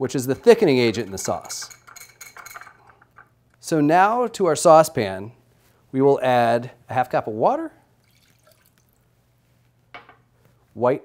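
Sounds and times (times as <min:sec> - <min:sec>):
glass bowl clinking on stone: 0:00.3 - 0:03.3
water pouring into saucepan: 0:08.0 - 0:09.0.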